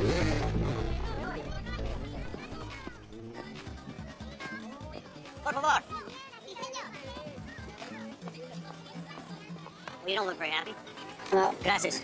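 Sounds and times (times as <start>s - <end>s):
crowd chattering: 0.0s - 12.0s
music: 0.0s - 12.0s.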